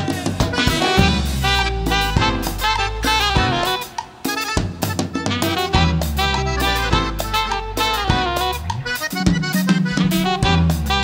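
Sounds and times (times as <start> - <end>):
drum kit steady beat: 0.0 - 11.0
electric bass notes: 0.0 - 11.0
lead melody line: 0.0 - 11.0.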